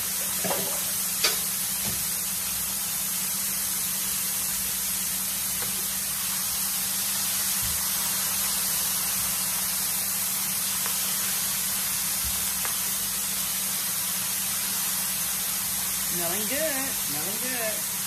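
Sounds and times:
fish frying in deep oil: 0.0 - 18.0.

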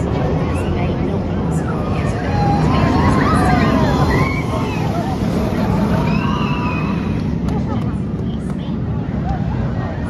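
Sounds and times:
faint voices: 0.0 - 10.0
roller coaster rumbling on track: 0.0 - 10.0.

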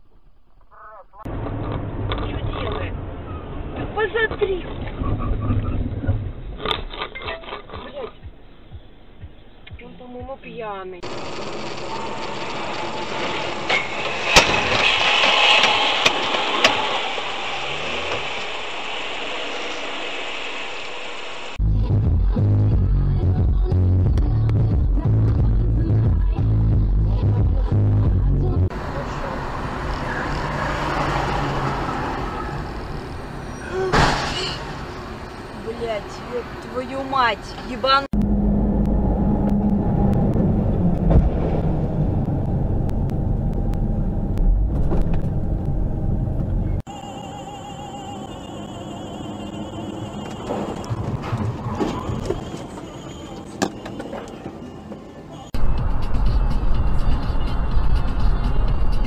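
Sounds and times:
car engine and road noise: 0.0 - 59.0
loud vehicle crash: 11.1 - 20.7, 28.8 - 35.6, 38.3 - 42.8, 46.4 - 54.8.

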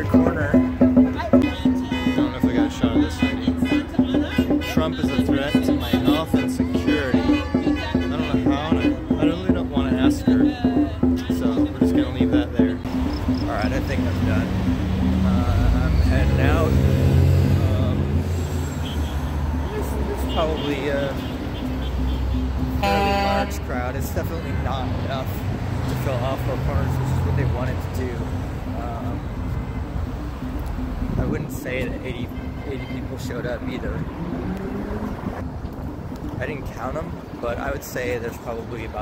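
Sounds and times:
rumble of passing cars: 0.0 - 39.0.

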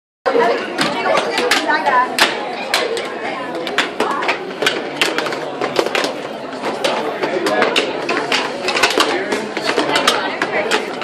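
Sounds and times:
crowd chatter in a large hall: 0.3 - 11.0
hockey sticks striking puck: 0.8 - 11.0.

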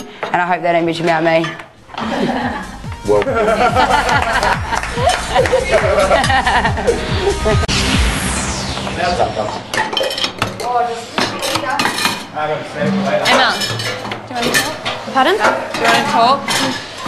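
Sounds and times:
dishes and cutlery clattering: 1.0 - 2.7, 9.9 - 17.0.

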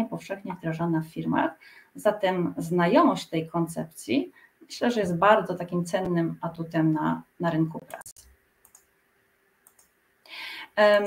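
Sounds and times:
woman speaking: 0.0 - 8.2, 10.6 - 11.0
short breath: 1.6 - 2.0, 10.3 - 10.7
faint clicks: 7.9 - 8.9, 9.6 - 10.0.

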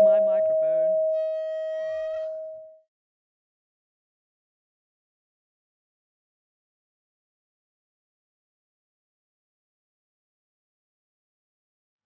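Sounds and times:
high-pitched electronic tone: 0.0 - 2.7.

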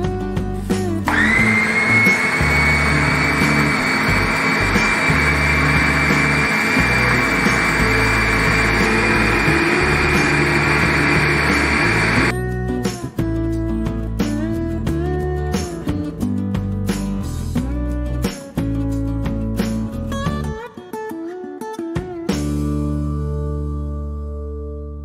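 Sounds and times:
food chopper motor whining: 1.1 - 12.3.

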